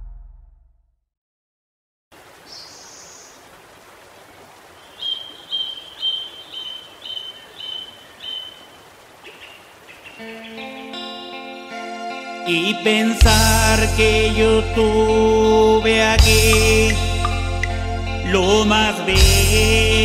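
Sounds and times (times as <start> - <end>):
running water: 2.2 - 11.4
bird chirping: 2.5 - 3.5, 4.6 - 11.2
music: 10.2 - 20.0.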